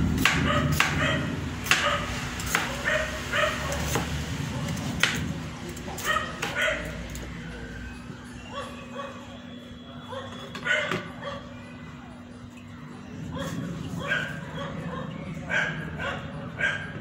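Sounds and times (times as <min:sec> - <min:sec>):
high-pitched yelping calls: 0:08.2 - 0:09.4.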